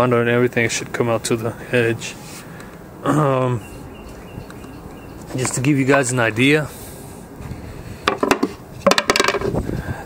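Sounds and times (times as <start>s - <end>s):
wooden rings knocking and clacking: 8.1s - 9.6s.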